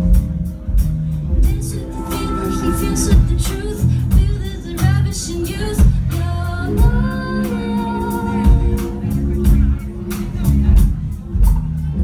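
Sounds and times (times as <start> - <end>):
bass guitar: 0.0 - 12.0
woman singing lead: 1.4 - 9.0.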